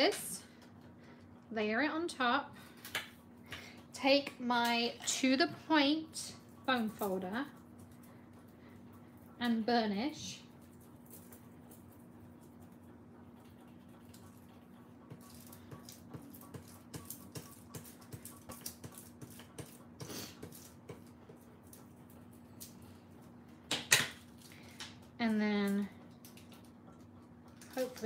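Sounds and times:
faint steady hum: 0.0 - 28.0.

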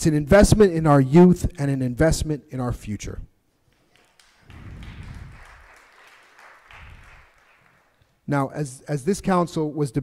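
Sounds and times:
audience applause: 3.9 - 8.1.

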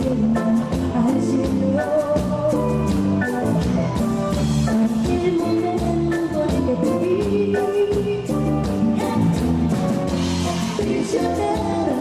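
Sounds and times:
woman singing: 0.0 - 3.2, 4.7 - 12.0
keyboards: 0.0 - 12.0
steady drum beat: 0.1 - 12.0.

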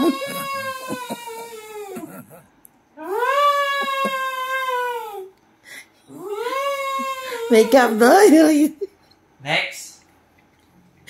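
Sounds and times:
long high wailing call: 3.0 - 5.3, 6.1 - 7.9.

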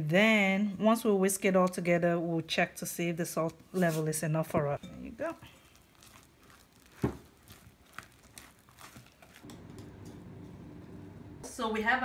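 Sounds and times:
mixing batter in bowl: 4.8 - 11.4.

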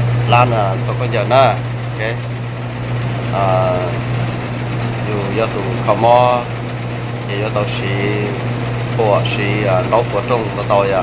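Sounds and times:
low machine hum: 0.0 - 11.0
man speaking: 0.3 - 2.2, 3.3 - 4.1, 5.0 - 6.5, 7.3 - 8.4, 9.0 - 11.0.

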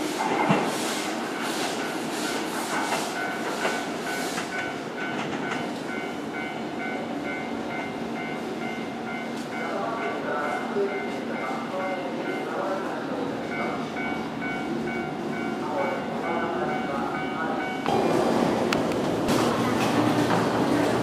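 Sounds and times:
electric train pulling in: 0.0 - 9.3, 13.1 - 21.0
station concourse noise: 0.0 - 21.0
voices: 9.5 - 18.1.

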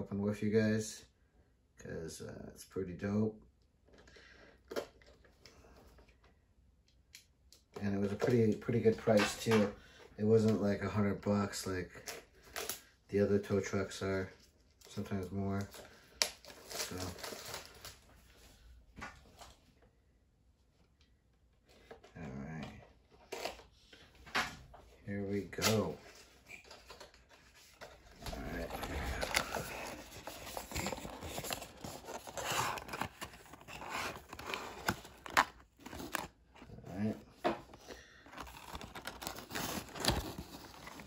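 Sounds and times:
cardboard and plastic rustling: 25.4 - 41.0
packaging scraping: 25.5 - 41.0.

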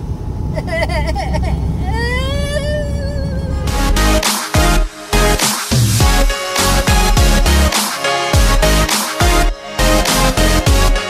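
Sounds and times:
road noise inside cab: 0.0 - 4.0
truck engine rumble: 0.0 - 7.7
man laughing: 0.5 - 3.7
loud music: 3.5 - 11.0.

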